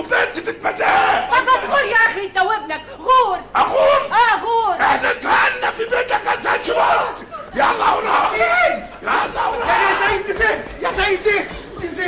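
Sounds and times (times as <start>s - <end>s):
voices shouting: 0.0s - 2.1s, 3.6s - 12.0s.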